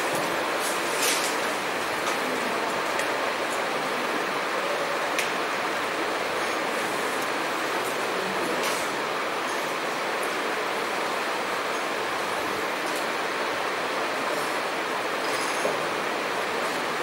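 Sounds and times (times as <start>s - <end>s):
steady background hiss: 0.0s - 17.0s.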